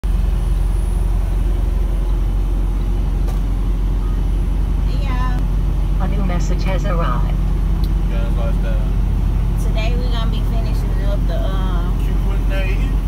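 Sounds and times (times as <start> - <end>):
diesel truck engine rumble: 0.0 - 13.0
road noise: 0.0 - 13.0.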